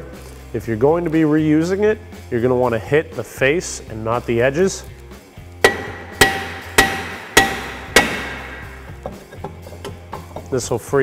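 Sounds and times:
hammer striking brake rotor: 5.6 - 10.0.

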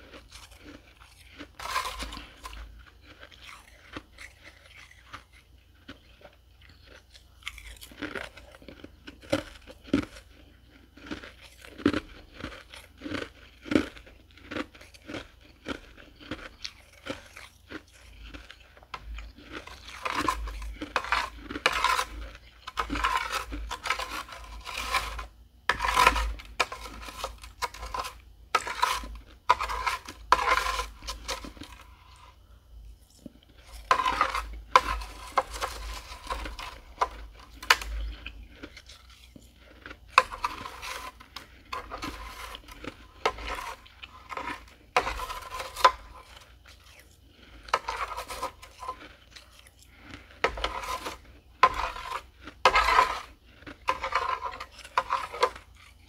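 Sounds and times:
chewing crunchy frost: 0.0 - 56.0.

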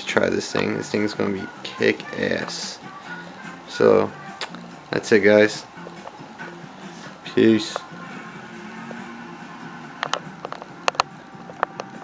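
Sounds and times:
phone handling clicks and taps: 10.0 - 12.0.

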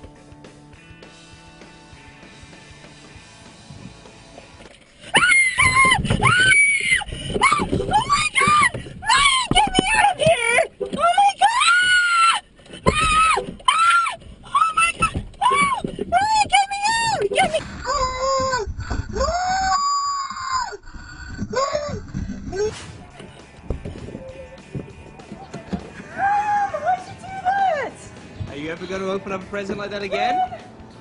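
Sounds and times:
woman screaming: 5.1 - 22.7, 26.0 - 27.9.

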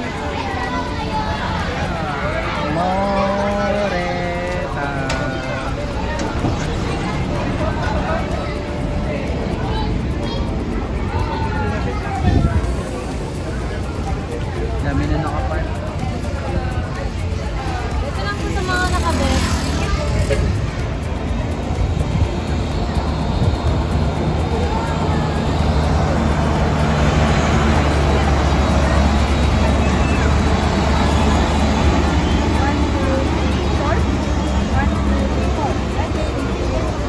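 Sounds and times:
people's voices: 0.0 - 37.0
truck diesel engine running: 0.0 - 37.0.

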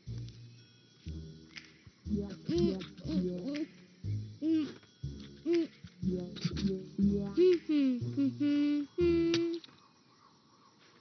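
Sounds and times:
cartoon character humming: 2.4 - 3.7, 7.0 - 9.6.

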